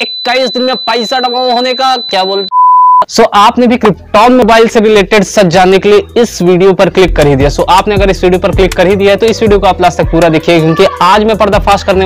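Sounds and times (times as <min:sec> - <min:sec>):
man talking: 0:00.0 - 0:02.5, 0:03.1 - 0:12.0
steady high-pitched tone: 0:00.0 - 0:02.5
loud electronic beep: 0:00.0 - 0:03.1.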